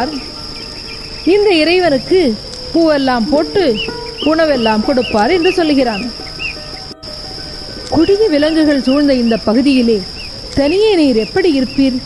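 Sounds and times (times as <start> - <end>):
bird chirp: 0.0 - 12.0
insect chirring: 0.0 - 12.0
soft background music: 0.0 - 12.0.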